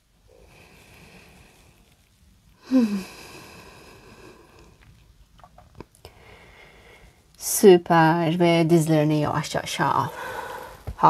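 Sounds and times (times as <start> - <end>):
quiet breathing: 0.0 - 5.2, 5.9 - 7.4, 10.0 - 11.0
woman's long soft exhale: 2.6 - 4.7.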